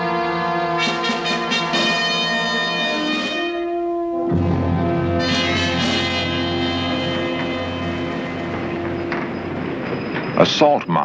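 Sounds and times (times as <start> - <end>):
rail car rumbling and rattling: 4.3 - 11.0.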